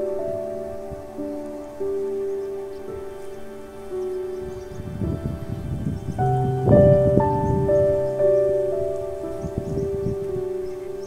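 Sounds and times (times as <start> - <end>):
slow sustained music chords: 0.0 - 11.0.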